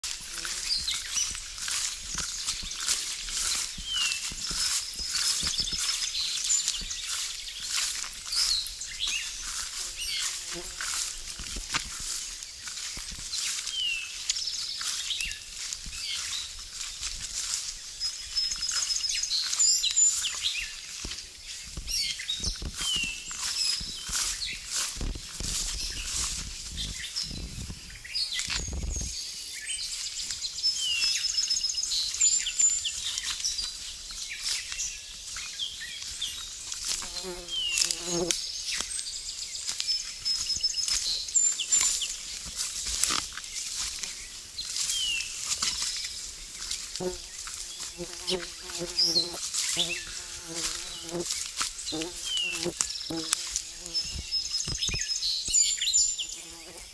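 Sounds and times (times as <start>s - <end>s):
footsteps in wet undergrowth: 0.0s - 56.9s
songbirds trilling and chirping: 0.0s - 56.9s.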